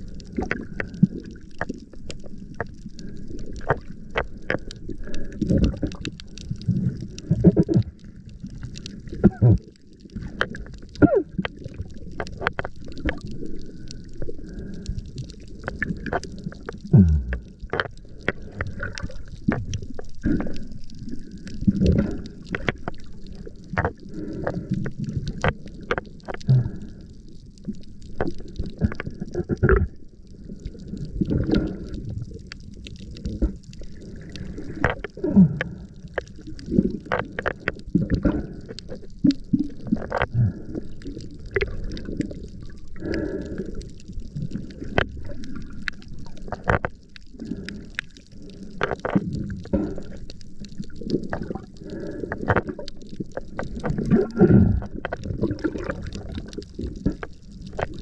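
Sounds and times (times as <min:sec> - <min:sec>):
muffled water washing and gurgling: 0:00.0 - 0:58.0
sharp clicks underwater: 0:00.0 - 0:58.0.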